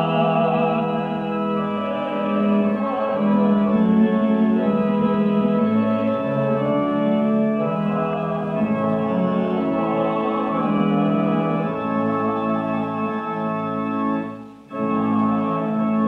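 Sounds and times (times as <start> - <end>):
organ playing sustained chords: 0.0 - 16.0.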